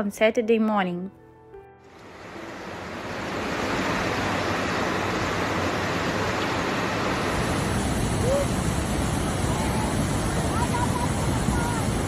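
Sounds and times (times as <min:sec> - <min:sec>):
wind: 0:01.3 - 0:12.0
heavy rain: 0:02.0 - 0:12.0.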